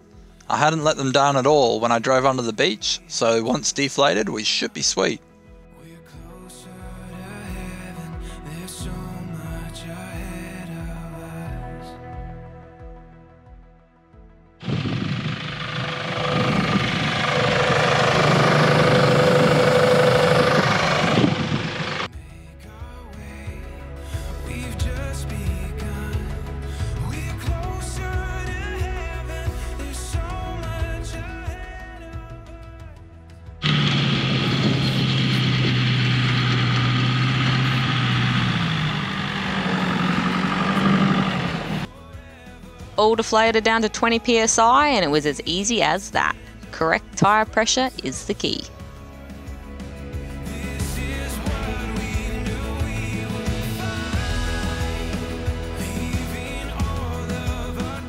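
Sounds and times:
background music: 0.0 - 58.0
engine working under load: 14.6 - 22.1, 33.6 - 41.9
steady rushing noise: 14.6 - 22.1, 33.6 - 41.9.

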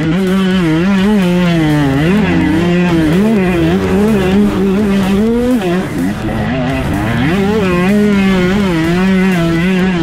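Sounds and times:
two-stroke engine revving high: 0.0 - 10.0.

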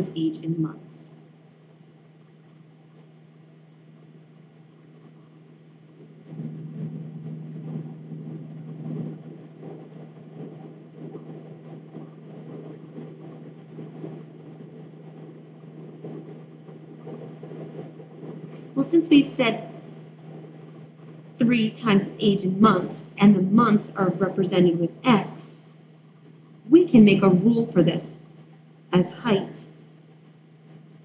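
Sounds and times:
steady low hum: 0.0 - 31.0.

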